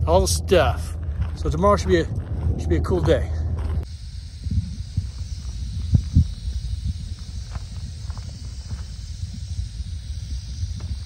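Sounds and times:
rattlesnake rattling: 3.8s - 11.0s.

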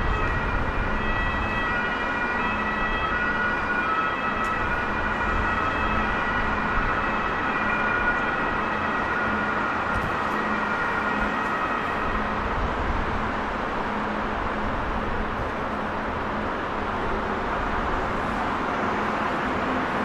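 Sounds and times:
electric train rumble: 0.0s - 20.0s.

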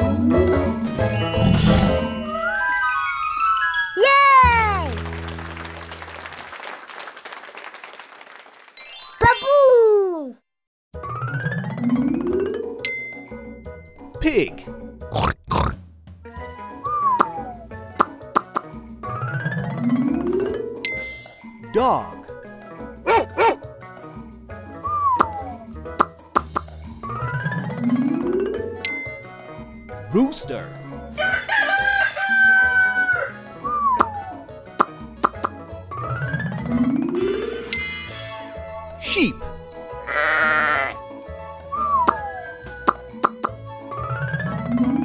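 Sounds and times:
light children's music: 0.0s - 6.1s, 11.0s - 15.0s, 16.2s - 45.0s
cartoon pig oinks: 15.1s - 15.8s, 40.1s - 41.0s
rooster crowing: 31.2s - 33.4s.

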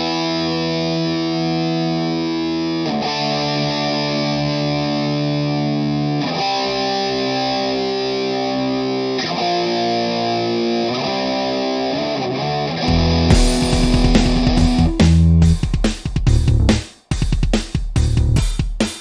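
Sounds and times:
distorted electric guitar chords: 0.0s - 18.4s.

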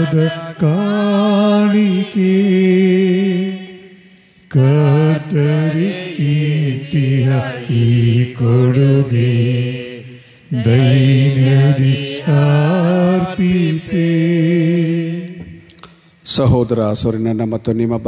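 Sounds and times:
man singing a chant-like hymn: 0.0s - 15.6s.

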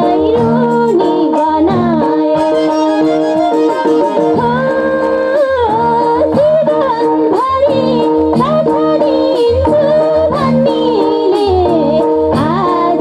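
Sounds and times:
hand drum beats: 0.0s - 13.0s
harmonium drone: 0.0s - 13.0s
woman singing folk song: 0.0s - 13.0s.

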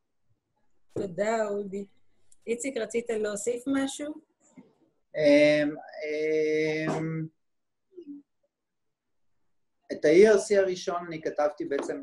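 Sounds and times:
man speaking: 5.1s - 7.4s, 9.9s - 12.0s.

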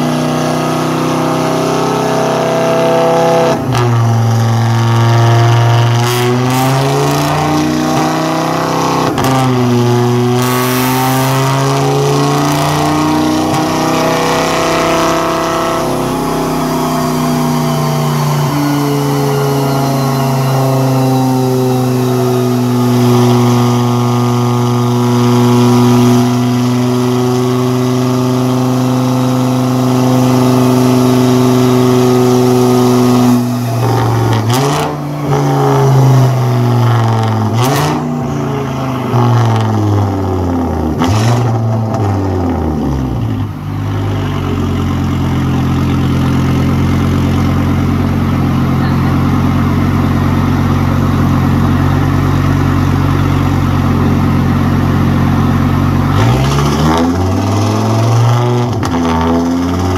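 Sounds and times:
car engine under load: 0.0s - 59.9s.

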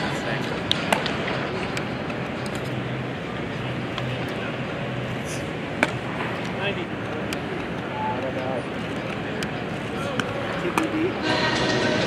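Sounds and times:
distant voices: 0.0s - 12.0s
steady background hum: 0.0s - 12.0s.

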